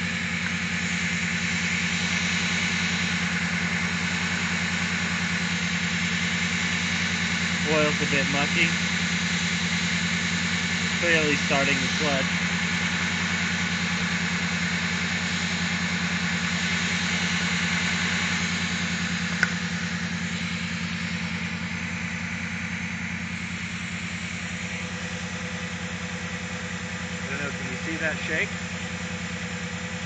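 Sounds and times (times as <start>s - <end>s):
car engine idling roughly: 0.0s - 30.0s
sharp click: 19.4s - 19.6s.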